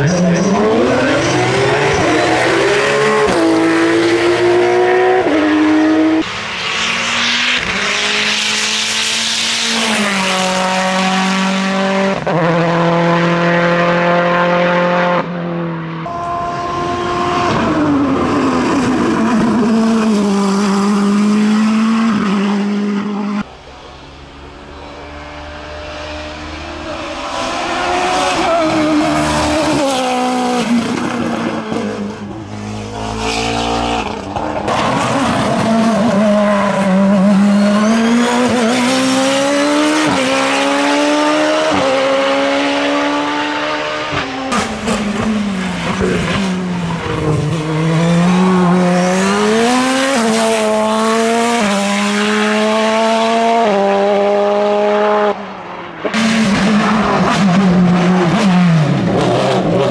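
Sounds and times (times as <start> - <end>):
racing car engine at full throttle: 0.0 - 59.9.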